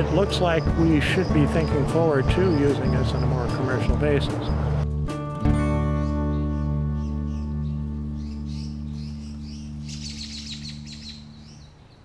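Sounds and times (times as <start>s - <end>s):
birds chirping: 0.0s - 4.9s, 5.8s - 12.0s
background music low chord: 0.0s - 12.0s.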